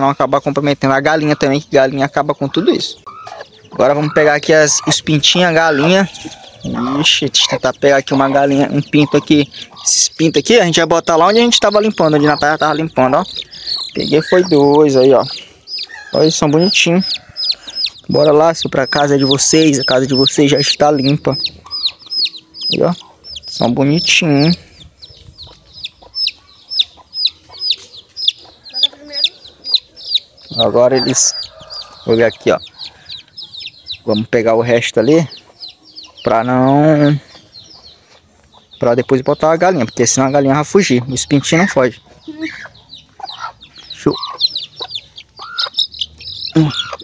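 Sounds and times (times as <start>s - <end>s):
chicks peeping: 0.0s - 47.0s
hen squawking: 0.8s - 34.2s, 41.0s - 47.0s.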